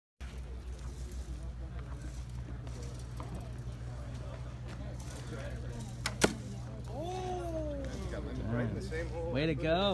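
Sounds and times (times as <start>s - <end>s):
arrow striking target: 6.0s - 6.5s.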